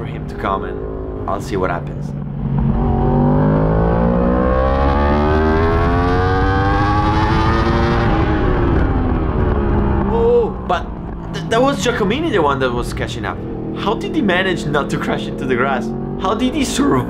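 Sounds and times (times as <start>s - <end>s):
motorcycle engine accelerating: 0.0s - 17.0s
wind rushing: 2.1s - 4.4s, 6.8s - 14.5s.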